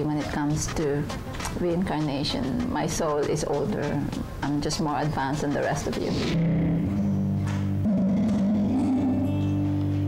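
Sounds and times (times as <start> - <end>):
acoustic guitar: 8.8 - 10.0.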